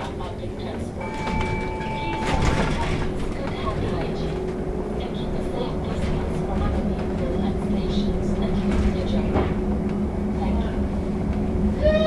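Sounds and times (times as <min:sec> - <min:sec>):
low road rumble: 0:00.0 - 0:12.0.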